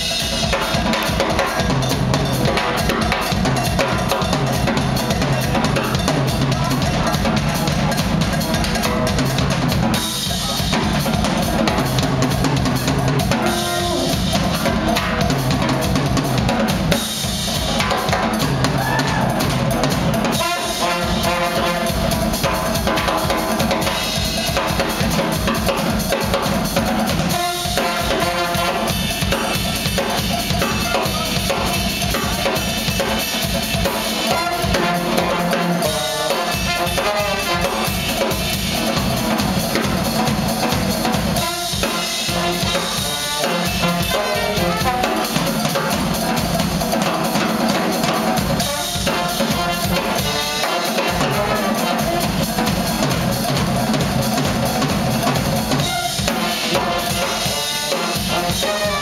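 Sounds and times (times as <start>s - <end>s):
drum kit solo: 0.0s - 59.0s.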